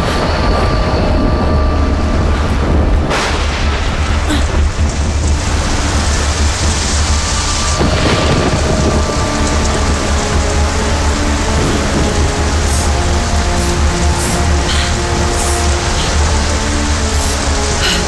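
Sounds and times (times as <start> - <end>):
heavy rain: 0.0 - 18.0
low thunder rumble: 0.0 - 18.0
soft background music: 0.0 - 18.0
thunderclap: 0.0 - 18.0.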